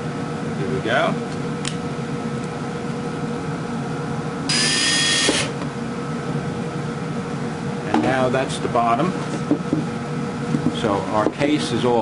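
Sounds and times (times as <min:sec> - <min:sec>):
cordless drill motor whine: 0:04.5 - 0:05.6.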